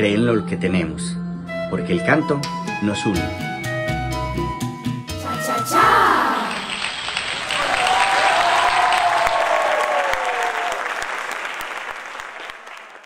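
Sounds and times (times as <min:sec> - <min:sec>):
voice calling out: 0:05.2 - 0:06.7
audience applauding: 0:05.7 - 0:13.0.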